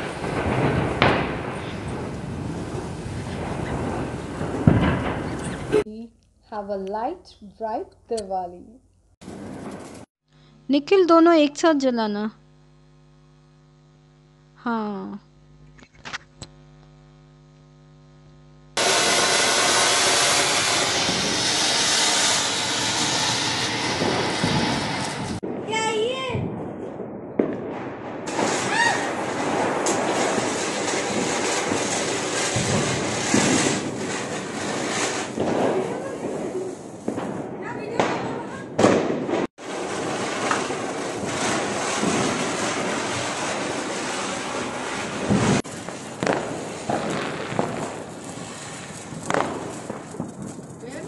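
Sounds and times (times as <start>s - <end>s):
firecrackers going off: 0.0s - 5.9s, 9.2s - 11.0s, 18.7s - 51.0s.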